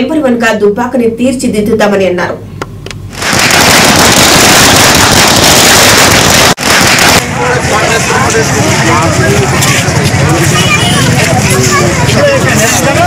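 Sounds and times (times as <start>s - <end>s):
loud dense crackling: 3.1s - 13.0s
street crowd talking: 6.6s - 13.0s.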